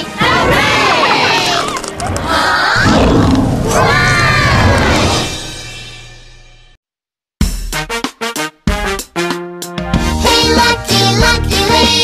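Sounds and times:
children cheering and shouting: 0.0s - 5.3s
cartoon dinosaur roar: 0.2s - 5.4s.

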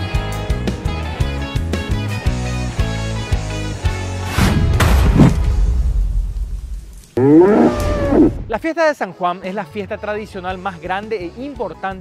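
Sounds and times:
bull bellowing: 7.2s - 8.4s.

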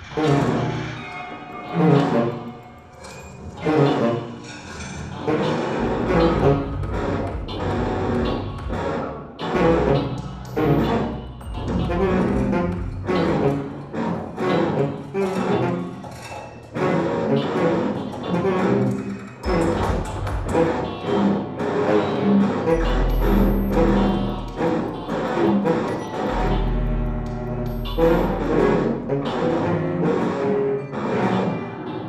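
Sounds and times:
contemporary chamber music: 0.0s - 32.0s
deep low sounds: 5.7s - 8.8s, 9.6s - 13.7s, 22.7s - 29.7s.

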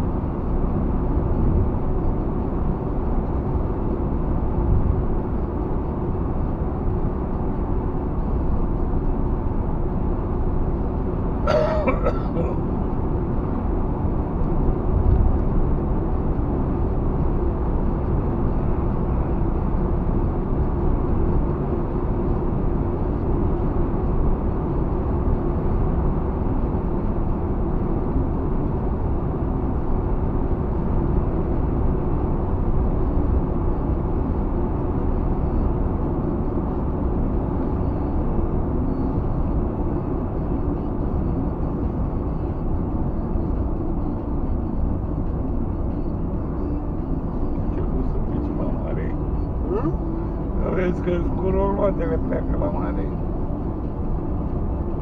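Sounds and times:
car tyres and engine rumble: 0.0s - 55.0s.

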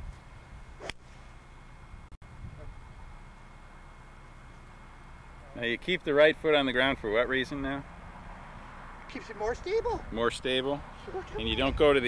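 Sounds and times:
low background hum: 0.0s - 10.2s
golf club striking ball: 0.8s - 1.2s.

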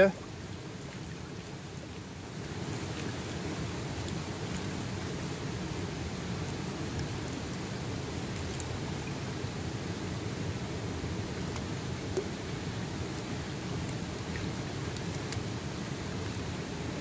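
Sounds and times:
running river water: 0.0s - 17.0s
faint clicks: 13.8s - 15.6s.

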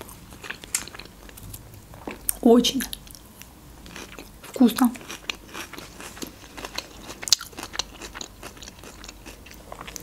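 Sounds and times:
person chewing food: 0.0s - 10.0s.

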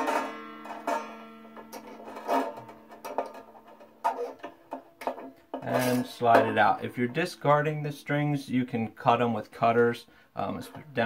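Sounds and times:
banjo string ringing: 0.0s - 11.0s.

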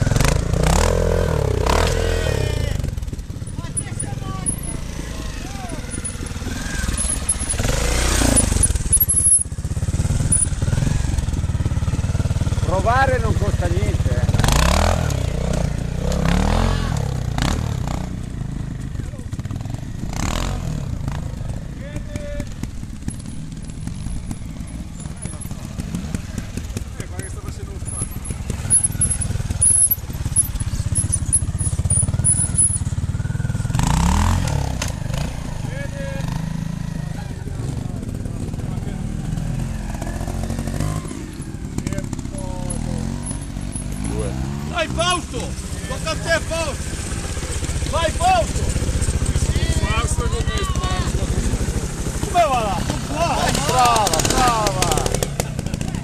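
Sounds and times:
motorcycle engine at low revs: 0.0s - 56.0s
motorcycle throttle blips: 0.0s - 56.0s.

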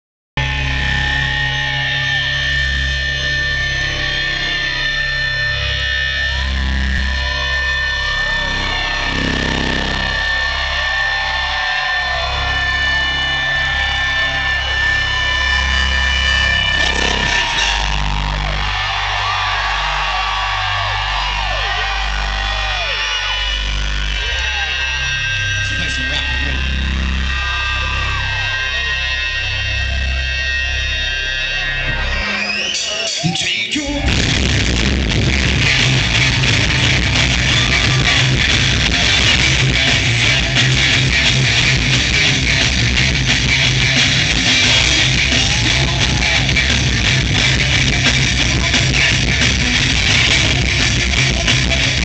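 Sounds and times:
live rock band through pa: 0.4s - 52.0s.

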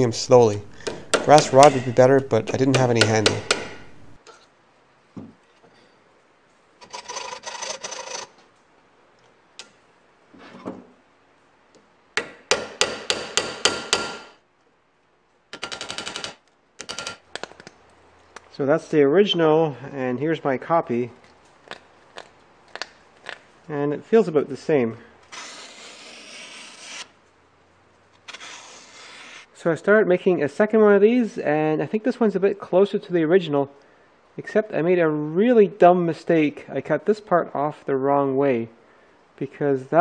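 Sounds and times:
knife slicing paper: 25.3s - 27.1s, 28.3s - 29.5s.

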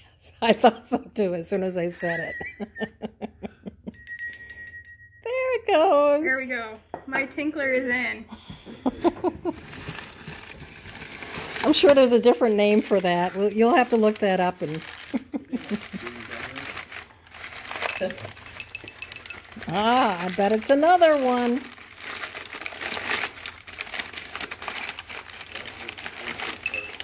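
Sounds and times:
ceramic hand bell ringing: 1.5s - 2.9s, 3.9s - 5.6s, 17.8s - 20.1s, 26.6s - 27.0s
laughter: 2.2s - 4.0s, 8.7s - 9.6s, 15.1s - 16.2s
packing paper crinkling: 9.4s - 27.0s.

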